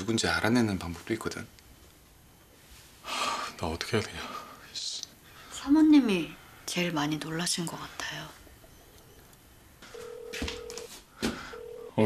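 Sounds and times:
telephone ringback tone: 8.7 - 12.0.

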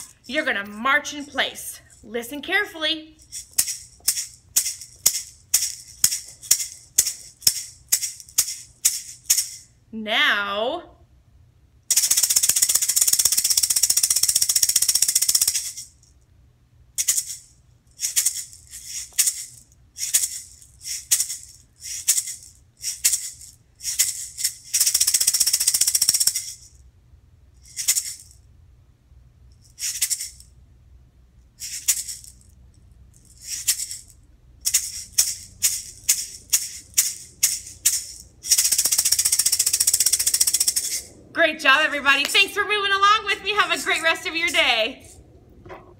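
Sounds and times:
maraca shaking: 0.0 - 2.3, 3.1 - 9.8, 11.9 - 16.2, 17.0 - 26.8, 27.6 - 28.4, 29.6 - 30.5, 31.6 - 41.3.

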